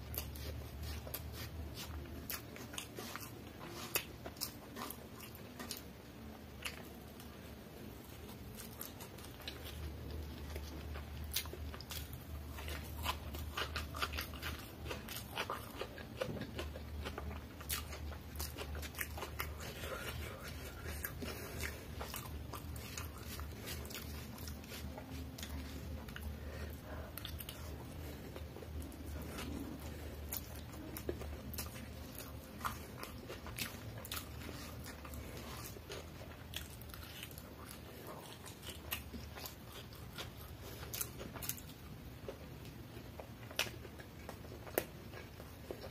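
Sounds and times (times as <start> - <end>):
low steady hum: 0.0 - 45.9
man chewing noodles: 0.0 - 45.9.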